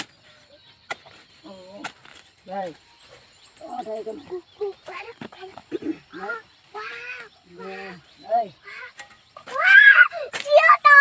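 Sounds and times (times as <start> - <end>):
high-pitched voices talking: 3.5 - 11.0.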